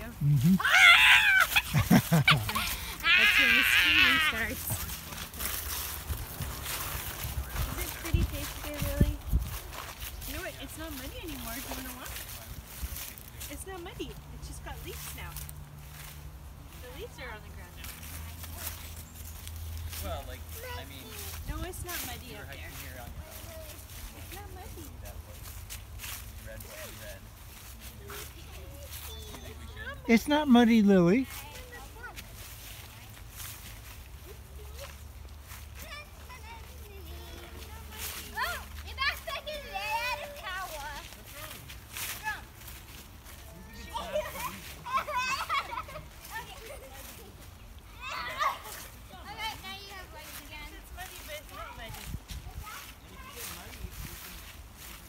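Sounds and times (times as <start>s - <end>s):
footsteps on dry leaves: 0.0s - 55.0s
children calling out: 0.4s - 4.7s, 43.5s - 49.6s.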